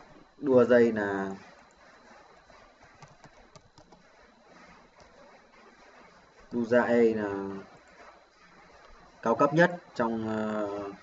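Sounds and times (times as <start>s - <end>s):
keyboard typing: 3.0s - 4.0s.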